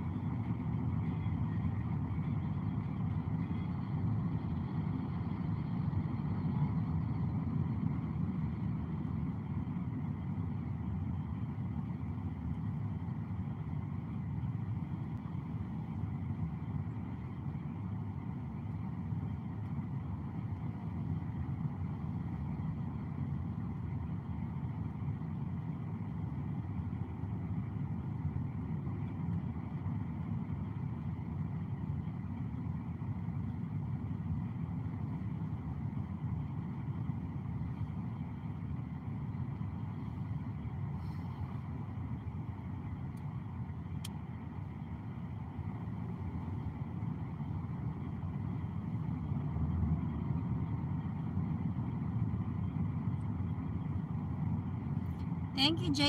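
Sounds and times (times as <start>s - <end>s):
tyre and engine rumble in car: 0.0s - 56.0s.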